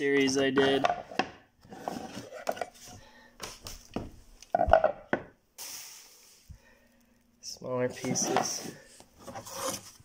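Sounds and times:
panels knocking on wooden floor: 0.2s - 1.4s, 4.0s - 5.3s.

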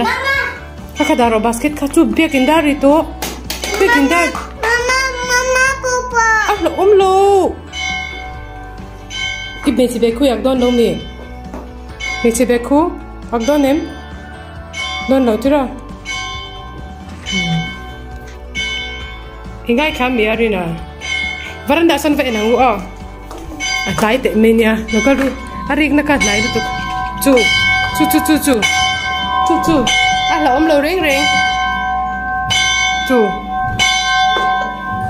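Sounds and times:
bell ringing: 0.9s - 3.1s, 6.4s - 12.7s, 13.3s - 35.0s
child calling: 3.9s - 6.6s.

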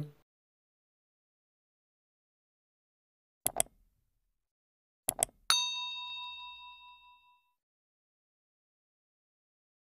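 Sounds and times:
mouse clicks: 3.5s - 3.8s, 5.1s - 5.4s
bell ding: 5.5s - 7.6s.

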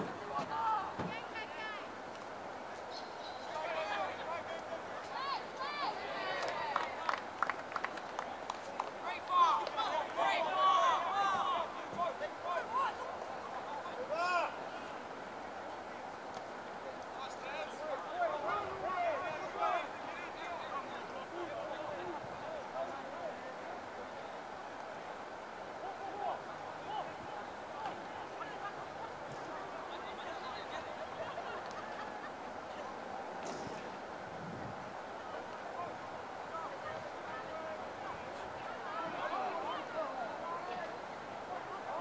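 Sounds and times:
players and spectators shouting: 0.0s - 2.0s, 3.4s - 7.2s, 9.0s - 15.5s, 16.8s - 34.2s, 34.9s - 42.0s.

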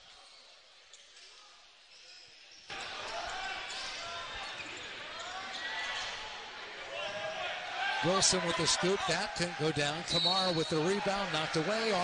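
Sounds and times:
crowd voices in a gym: 0.0s - 12.0s.

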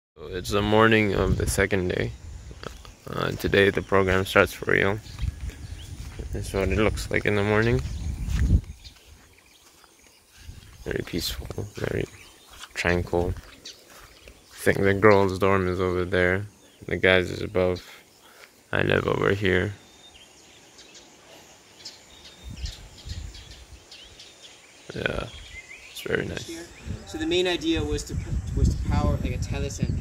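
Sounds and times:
man's voice: 0.2s - 5.1s, 6.1s - 8.0s, 10.8s - 12.2s, 12.8s - 13.4s, 14.6s - 18.0s, 18.8s - 19.8s, 26.0s - 30.0s
birds chirping: 0.2s - 30.0s
low thumps: 0.4s - 8.9s.

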